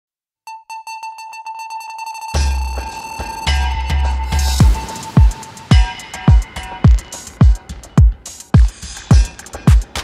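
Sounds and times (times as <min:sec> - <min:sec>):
repeating synthesizer note: 0:00.5 - 0:08.3.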